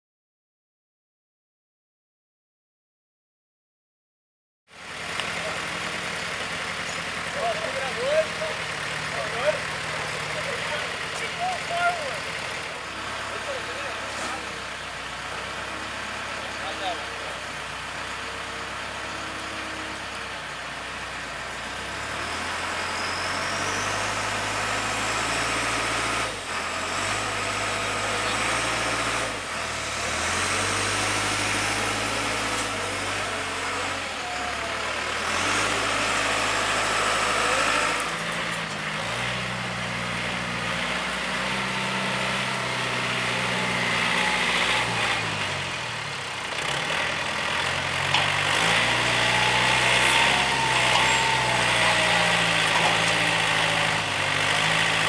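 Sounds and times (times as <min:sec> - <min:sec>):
tractor engine under load: 0:04.8 - 0:55.0.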